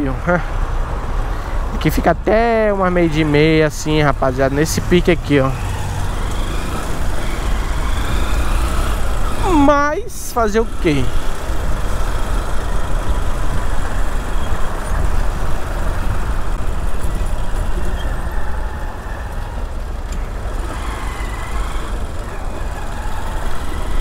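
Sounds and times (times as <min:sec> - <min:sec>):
city traffic: 0:00.0 - 0:24.0.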